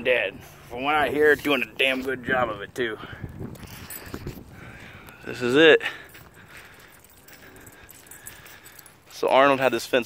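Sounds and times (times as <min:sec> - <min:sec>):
light rustles: 0:03.3 - 0:10.0.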